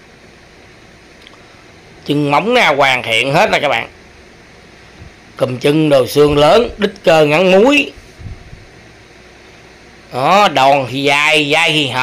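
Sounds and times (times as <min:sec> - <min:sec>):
fan-like background hiss: 0:00.0 - 0:12.0.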